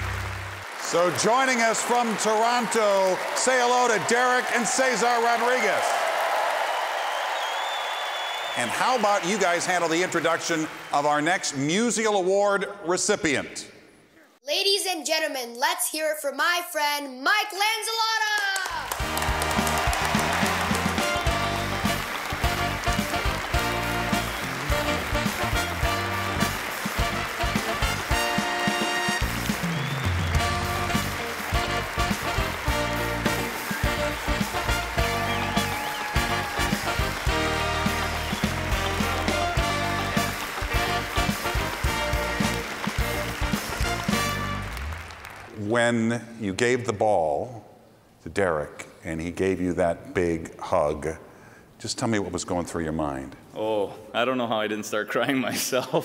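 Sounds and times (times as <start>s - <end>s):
audience applause: 0.0s - 11.6s, 18.5s - 45.7s
live band playing: 18.8s - 45.5s.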